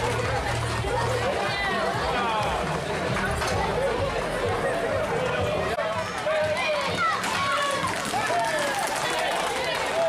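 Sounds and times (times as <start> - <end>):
crowd voices and shouts: 0.0 - 10.0
hooves running on pavement: 5.8 - 10.0.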